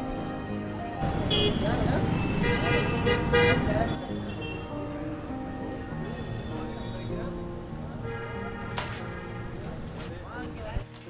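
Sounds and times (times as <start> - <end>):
background music: 0.0 - 11.0
traffic: 0.0 - 11.0
vehicle horns honking: 1.1 - 4.8, 8.0 - 9.8.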